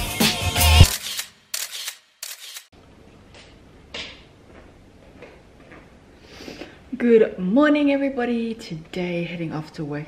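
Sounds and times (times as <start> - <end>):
intro music: 0.0 - 0.9
camera shutter snap: 0.8 - 2.7.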